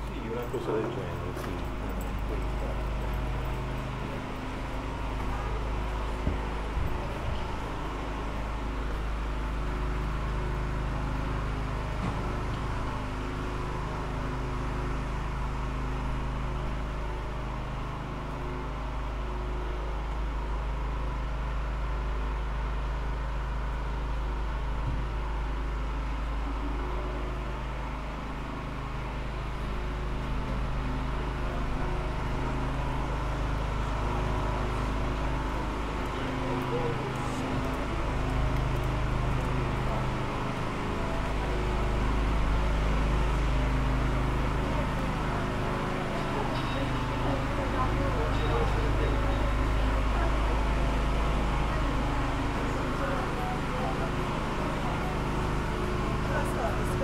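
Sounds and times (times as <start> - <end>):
people's voices: 0.0 - 8.4, 31.5 - 42.4, 43.8 - 57.0
low mechanical hum: 0.0 - 57.0.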